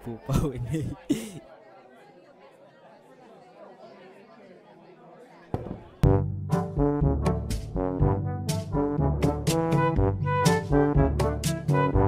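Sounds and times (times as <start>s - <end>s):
crowd murmur: 0.0s - 6.7s.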